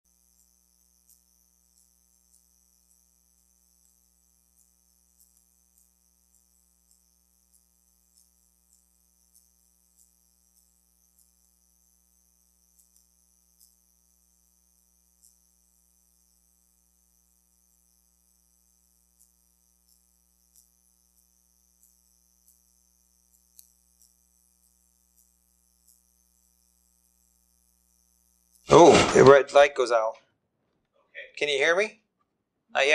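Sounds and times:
high hiss: 0:28.7 - 0:30.1.

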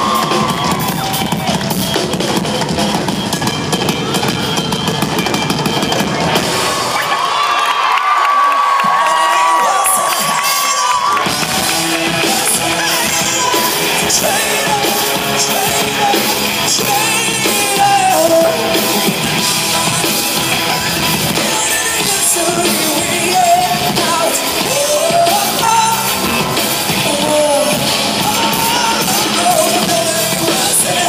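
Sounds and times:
live rock drum kit: 0:00.0 - 0:07.9, 0:08.6 - 0:31.0
audience cheering: 0:00.0 - 0:31.0
rock band playing: 0:00.0 - 0:31.0.

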